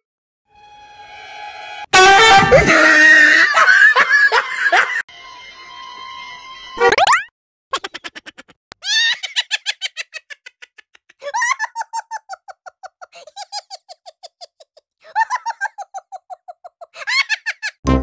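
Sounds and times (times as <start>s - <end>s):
high-pitched laughter: 2.4s - 5.0s, 7.7s - 17.8s.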